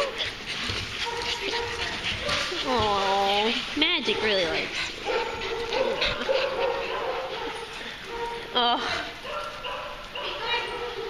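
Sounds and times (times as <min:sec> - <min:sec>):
dogs barking and yipping: 0:00.0 - 0:11.0.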